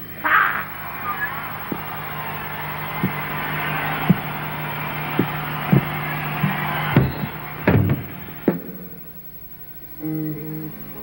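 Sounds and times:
crowd cheering: 0:00.0 - 0:09.4
low steady hum: 0:00.0 - 0:11.0
low thumps: 0:01.4 - 0:09.0.

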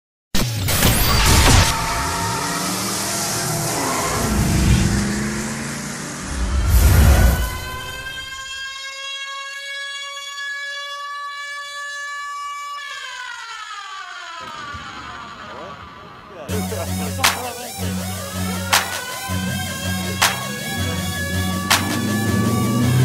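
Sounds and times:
siren-like electronic tone: 0:00.4 - 0:23.0.

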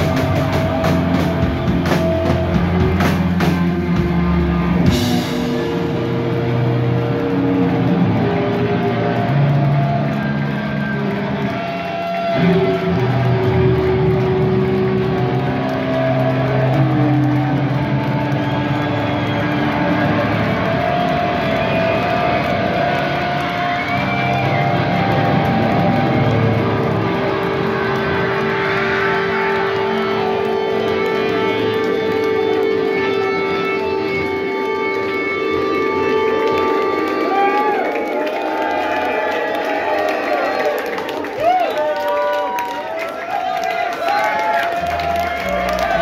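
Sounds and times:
electric guitars droning: 0:00.0 - 0:41.4, 0:44.3 - 0:46.0
whistling guitar feedback: 0:17.7 - 0:26.7.

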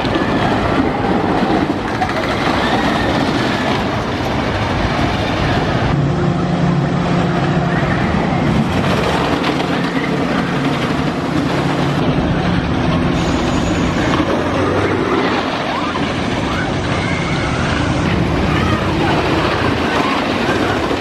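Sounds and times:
people's voices: 0:00.0 - 0:06.3, 0:07.2 - 0:21.0
roller coaster on wooden track: 0:00.0 - 0:21.0.

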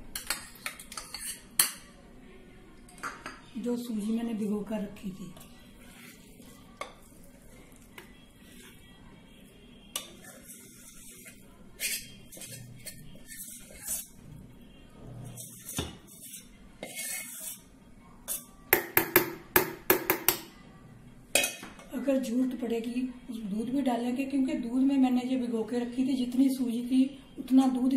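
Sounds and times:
spoon scraping steel bowl: 0:00.2 - 0:01.8, 0:05.4 - 0:07.2, 0:09.9 - 0:14.4, 0:15.1 - 0:18.5.

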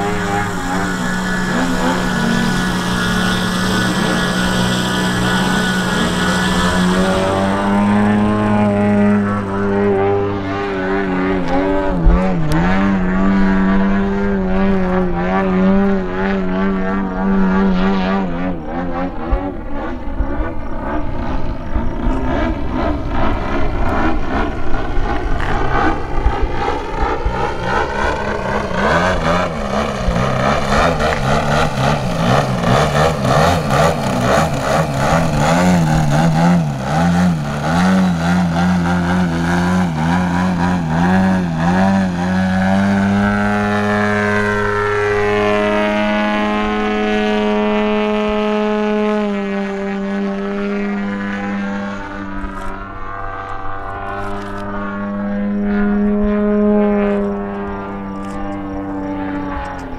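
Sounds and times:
model plane engine in flight: 0:00.0 - 0:59.9.

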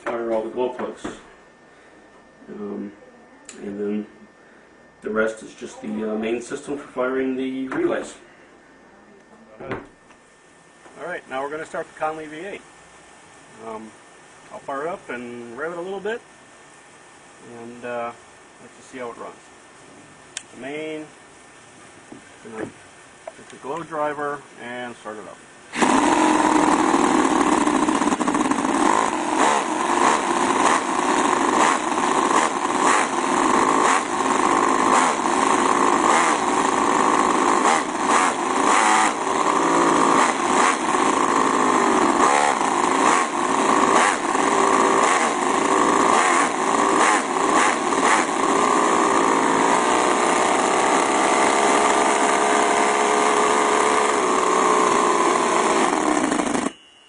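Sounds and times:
model engine revving: 0:25.7 - 0:56.7.

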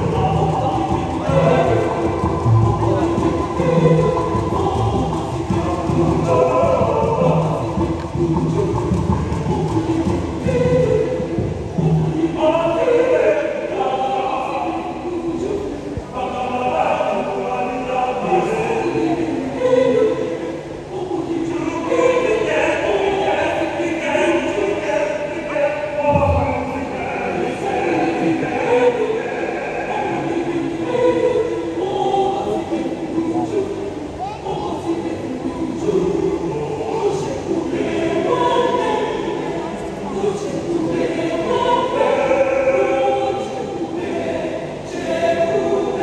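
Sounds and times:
mixed choir singing in harmony: 0:00.0 - 0:46.0.

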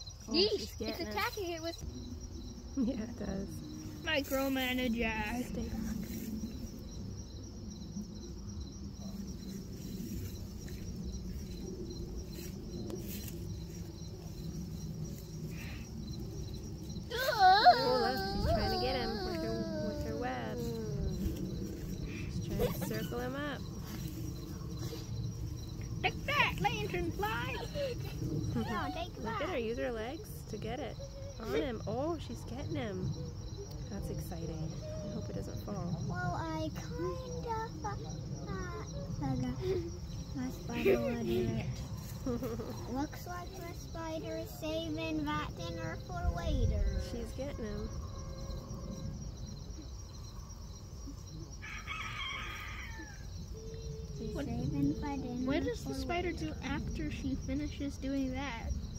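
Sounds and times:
steady low rumble: 0:00.0 - 0:17.1, 0:18.3 - 0:51.5
insects trilling: 0:00.0 - 0:58.9
rooster crowing: 0:47.5 - 0:48.9, 0:51.6 - 0:53.5.

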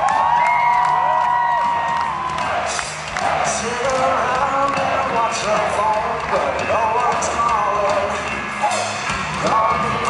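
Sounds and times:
live punk rock band: 0:00.4 - 0:10.0
person singing lead vocal: 0:02.6 - 0:10.0.

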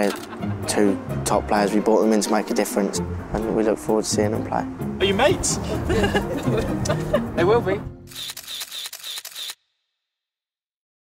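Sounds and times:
camera shutter clicking in a burst: 0:08.1 - 0:09.6.

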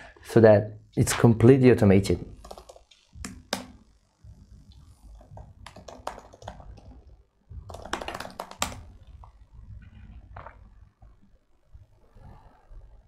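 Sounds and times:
typing on computer keyboard: 0:02.4 - 0:03.7, 0:05.2 - 0:07.0, 0:07.7 - 0:08.9.

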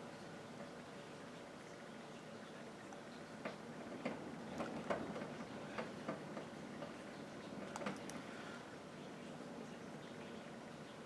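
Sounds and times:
faint small clicks and ticks: 0:07.6 - 0:08.3.

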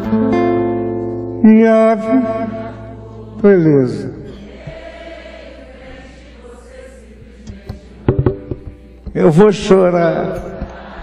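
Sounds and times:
percussion taps: 0:07.4 - 0:09.2.

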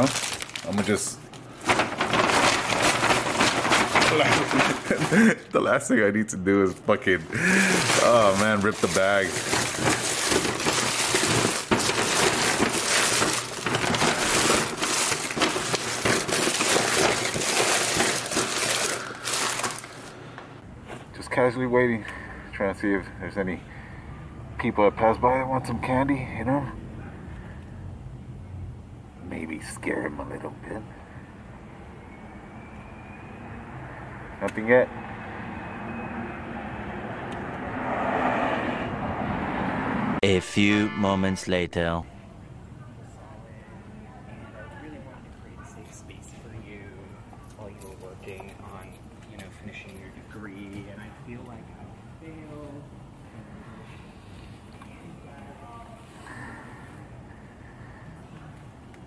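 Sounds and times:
paper bag crinkling: 0:00.0 - 0:05.5, 0:07.3 - 0:20.2
wrapped candy rustling: 0:00.0 - 0:05.6, 0:07.2 - 0:20.2
vehicle passing: 0:07.0 - 0:11.7, 0:33.2 - 0:41.9.

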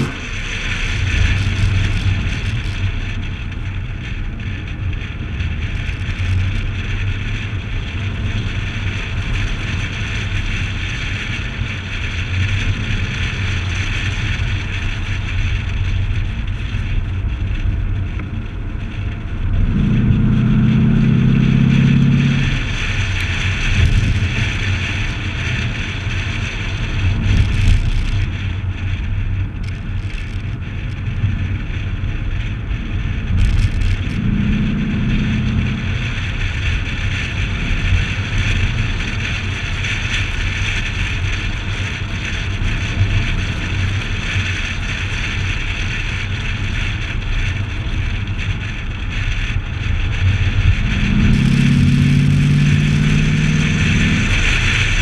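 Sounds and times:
car engine rumble: 0:00.0 - 0:55.0
tyres on road: 0:00.0 - 0:55.0
wind buffeting microphone: 0:00.0 - 0:55.0.

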